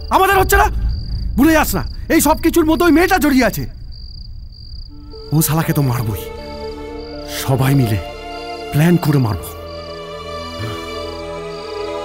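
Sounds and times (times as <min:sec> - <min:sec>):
crickets chirping: 0:00.0 - 0:12.0
background music: 0:04.9 - 0:12.0.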